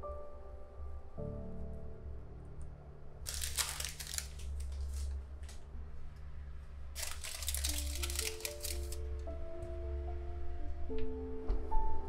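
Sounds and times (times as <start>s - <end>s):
background music: 0.0s - 12.0s
parchment paper crinkling: 3.3s - 5.2s, 7.0s - 9.0s.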